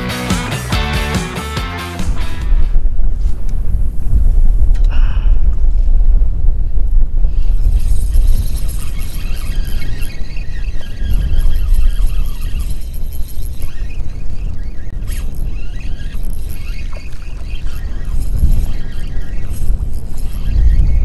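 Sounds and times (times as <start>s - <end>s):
wind rumbling on microphone: 2.0s - 21.0s.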